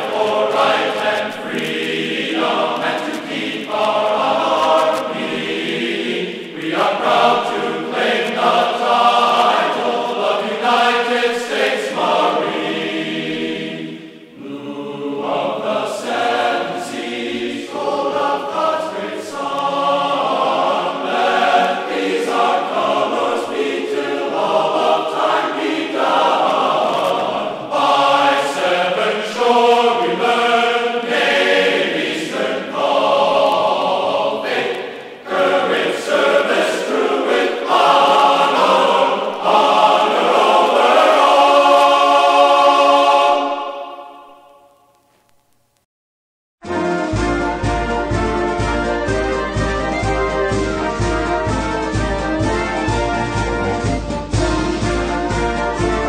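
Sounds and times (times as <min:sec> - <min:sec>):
choir singing: 0:00.0 - 0:44.9.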